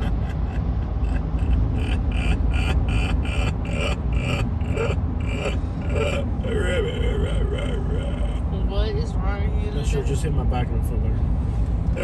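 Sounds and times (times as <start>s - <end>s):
person laughing: 0.0s - 8.5s
wavering voice: 0.0s - 8.6s
car road and engine rumble: 0.0s - 12.0s.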